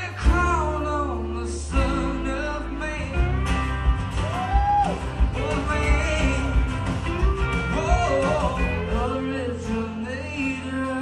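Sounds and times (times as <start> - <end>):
bass: 0.0 - 11.0
drums: 0.0 - 11.0
electric guitar: 0.0 - 11.0
man singing: 0.0 - 11.0
strummed acoustic guitar: 0.0 - 11.0.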